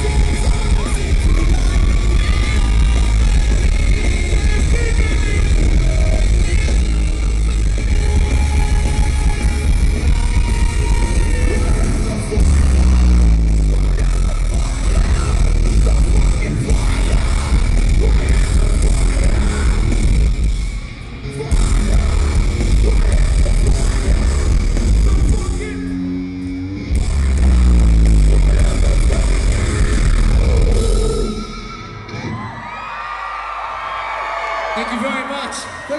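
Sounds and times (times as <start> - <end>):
electric guitar: 0.0 - 32.8
rock band playing live: 0.0 - 35.9
crowd cheering and screaming: 28.5 - 35.9.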